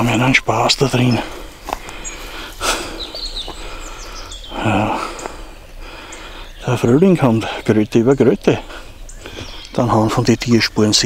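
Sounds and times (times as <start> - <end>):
man speaking: 0.0 - 1.5, 4.5 - 5.2, 6.6 - 8.8, 9.7 - 11.0
bird chirp: 0.0 - 11.0
outdoor background hiss: 0.0 - 11.0.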